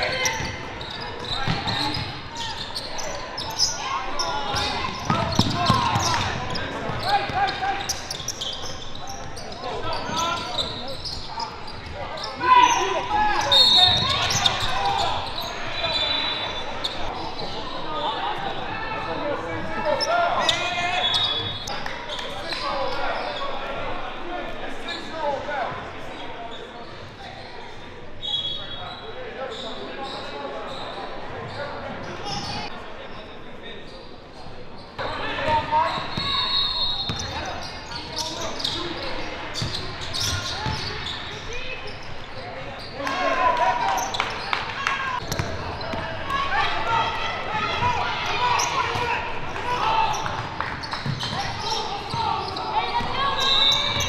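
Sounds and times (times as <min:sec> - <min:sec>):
shoe squeaks: 0:00.0 - 0:18.2, 0:19.8 - 0:23.6, 0:26.5 - 0:32.7, 0:34.8 - 0:43.0, 0:49.9 - 0:54.0.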